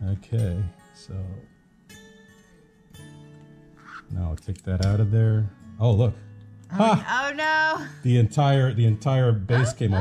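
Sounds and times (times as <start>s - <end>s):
soft plucked guitar-like music: 0.0s - 10.0s
man speaking: 4.1s - 6.1s, 8.0s - 10.0s.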